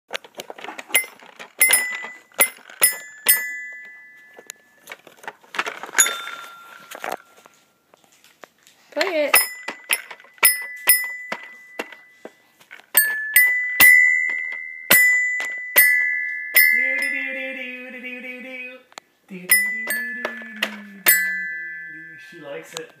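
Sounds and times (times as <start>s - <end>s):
toy xylophone notes: 0.9s - 4.9s, 6.0s - 7.4s, 9.2s - 18.2s, 19.4s - 23.0s
voice holding a tone: 16.8s - 22.3s.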